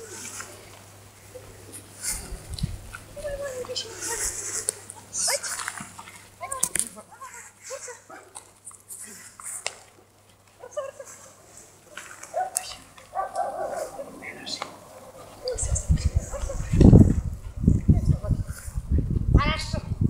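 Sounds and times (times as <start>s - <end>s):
dog barking: 12.3s - 14.1s.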